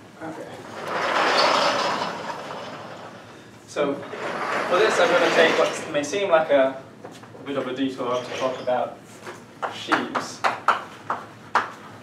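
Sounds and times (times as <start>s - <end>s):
sliding chalkboard panel rumbling: 0.6s - 6.3s.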